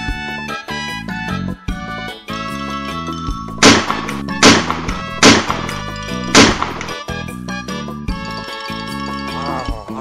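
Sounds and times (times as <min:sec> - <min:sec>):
light background music: 0:00.0 - 0:10.0
pistol shots: 0:03.5 - 0:07.0.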